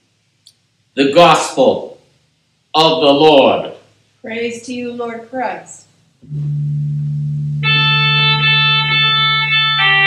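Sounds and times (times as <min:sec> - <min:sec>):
church organ sustained notes: 0:06.3 - 0:10.0.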